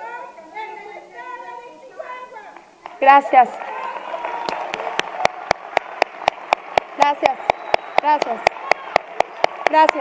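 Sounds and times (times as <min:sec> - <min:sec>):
audience applauding: 0:02.8 - 0:10.0
hands clapping in rhythm: 0:03.6 - 0:10.0.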